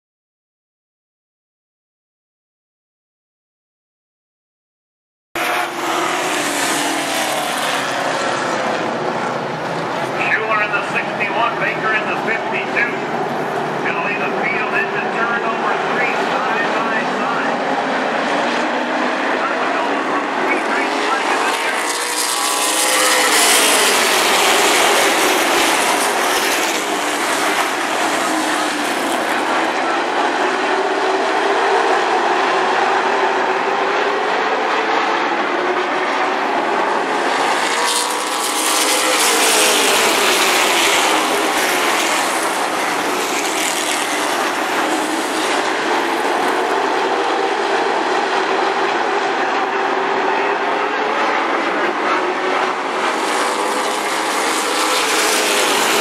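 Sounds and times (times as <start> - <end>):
racing car engines passing: 5.4 - 56.0.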